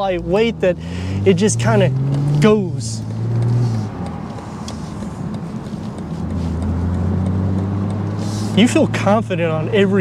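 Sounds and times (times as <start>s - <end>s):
car engine under throttle: 0.0s - 10.0s
road and wind noise: 0.0s - 10.0s.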